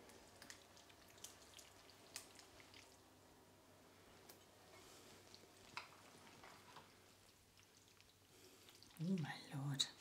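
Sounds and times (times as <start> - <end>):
wet pasta sounds: 0.0 - 10.0.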